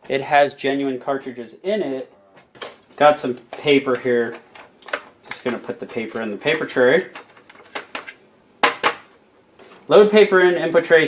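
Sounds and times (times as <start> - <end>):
paper handling noises: 2.4 - 8.3.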